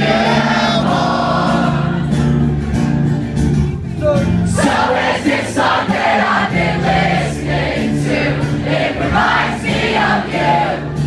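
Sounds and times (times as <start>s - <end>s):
crowd singing along: 0.0s - 3.0s, 4.5s - 11.0s
acoustic guitar strumming: 0.0s - 11.0s.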